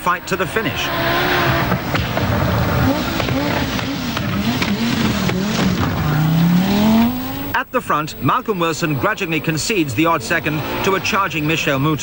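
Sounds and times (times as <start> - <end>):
rally car engine revving: 0.0 - 7.6, 8.7 - 12.0.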